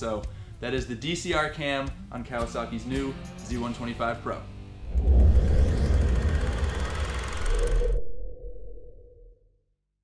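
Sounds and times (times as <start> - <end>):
low hum: 4.8 - 9.4
low rumble: 4.8 - 9.4.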